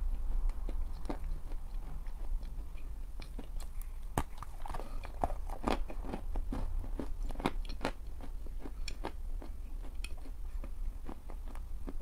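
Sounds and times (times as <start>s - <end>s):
crunchy biting and chewing: 0.4s - 12.0s.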